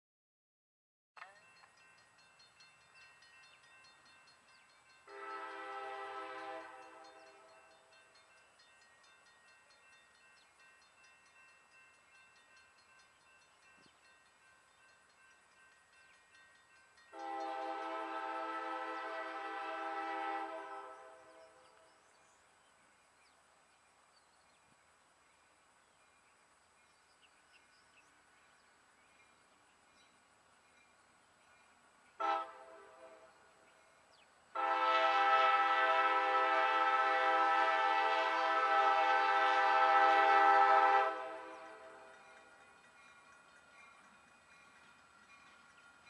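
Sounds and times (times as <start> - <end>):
locomotive air horn: 5.1 - 7.5, 17.1 - 21.5, 32.2 - 33.3, 34.6 - 42.1.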